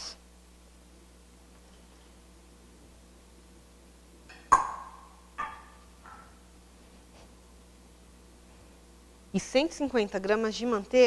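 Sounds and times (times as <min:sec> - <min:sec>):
glassware clinking: 0:04.3 - 0:06.3.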